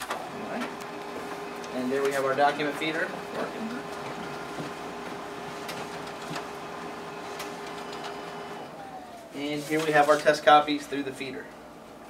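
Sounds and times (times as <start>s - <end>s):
paper feeding clicks: 0.0s - 10.4s
copier humming: 0.0s - 12.0s.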